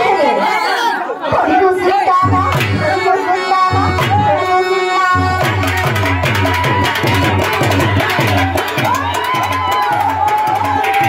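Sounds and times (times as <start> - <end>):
people talking over microphones: 0.0 - 9.1
low drum beat: 5.4 - 11.0.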